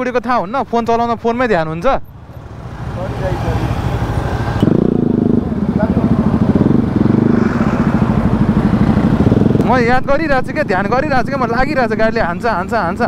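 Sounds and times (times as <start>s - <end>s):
motorcycle engine: 1.6s - 13.0s.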